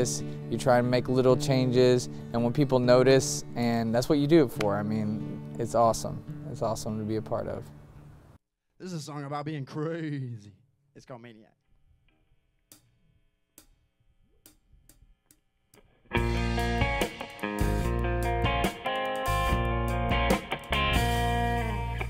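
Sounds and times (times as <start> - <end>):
blues band playing: 16.1 - 22.0.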